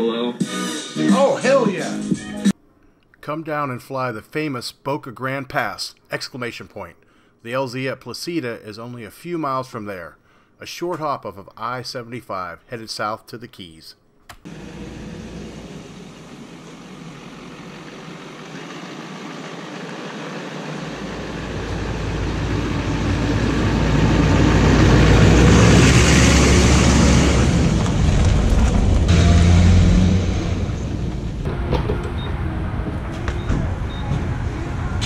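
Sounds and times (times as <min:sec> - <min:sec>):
pickup truck driving on gravel: 0:15.4 - 0:29.4.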